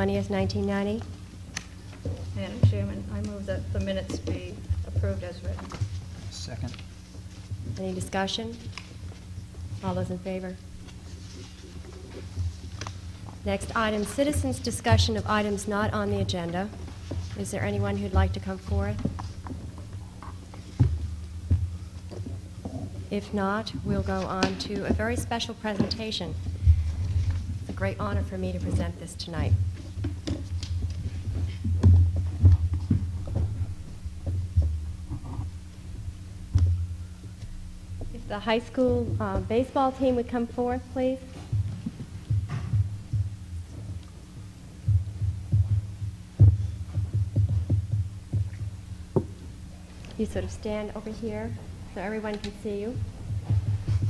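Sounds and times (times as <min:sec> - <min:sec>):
sound system hum: 0:00.0 - 0:54.0
footsteps on floor: 0:10.8 - 0:23.1, 0:23.8 - 0:35.8, 0:36.5 - 0:54.0
dull thumps near microphone: 0:14.4 - 0:16.6, 0:36.4 - 0:49.6.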